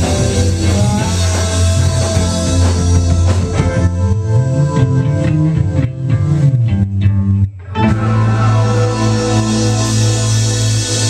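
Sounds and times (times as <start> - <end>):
bass guitar: 0.0 - 11.0
electric guitar: 0.0 - 11.0.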